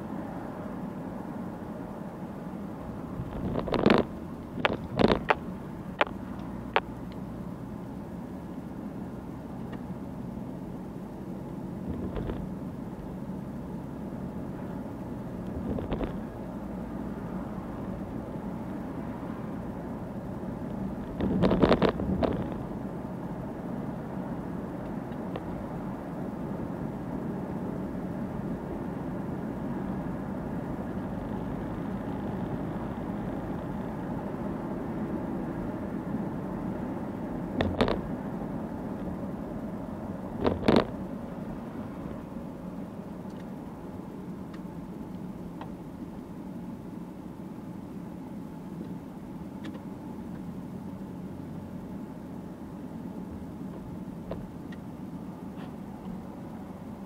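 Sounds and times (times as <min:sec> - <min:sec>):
car engine and tyre rumble: 0:00.0 - 0:57.0.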